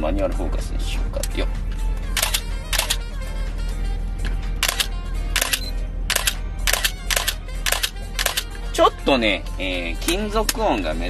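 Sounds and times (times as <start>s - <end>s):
camera shutter clicking: 2.2s - 3.0s, 4.6s - 8.5s.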